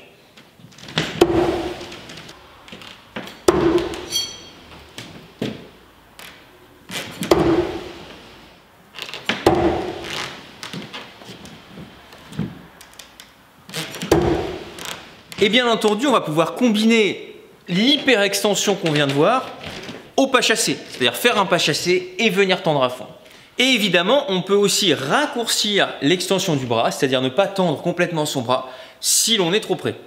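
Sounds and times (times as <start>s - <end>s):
knives thunking into wood: 1.0s - 2.0s, 3.2s - 4.7s, 7.1s - 7.9s, 9.3s - 10.0s, 14.0s - 14.7s
brief metallic ring: 4.1s - 4.6s.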